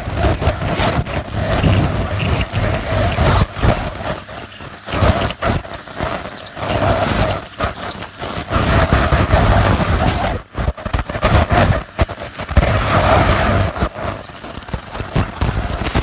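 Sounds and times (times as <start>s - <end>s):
dental scaler whine: 0.0s - 10.6s, 12.5s - 16.0s.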